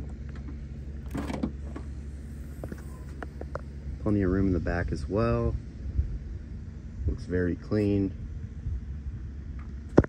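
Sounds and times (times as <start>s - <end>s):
liftgate unlatching and lifting: 0.0s - 1.9s.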